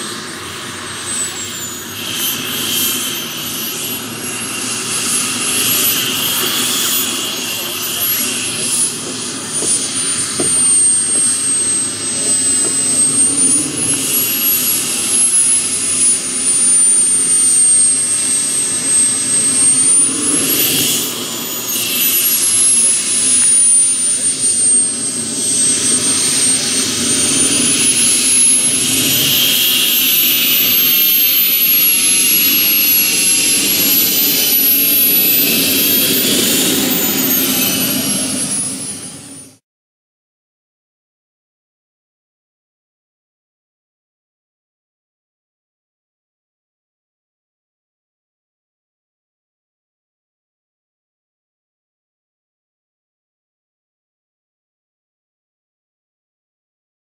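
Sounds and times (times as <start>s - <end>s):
model jet turbine whine: 0.0s - 39.6s.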